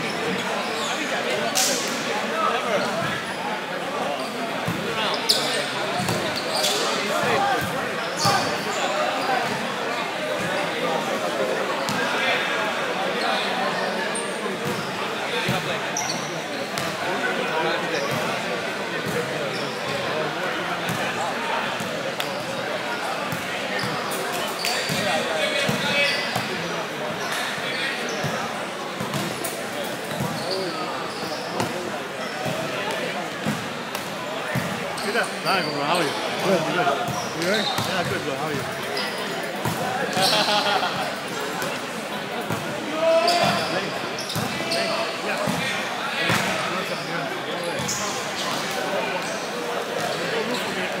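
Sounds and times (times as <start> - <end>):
many voices chattering and calling: 0.0 - 51.0.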